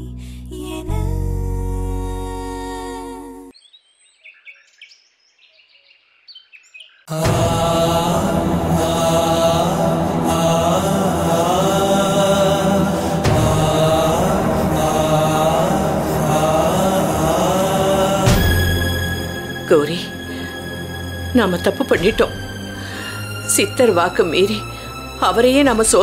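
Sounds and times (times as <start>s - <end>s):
faint bird chirps: 3.5s - 7.1s
loud devotional chanting: 7.1s - 19.6s
steady low drone: 7.1s - 26.0s.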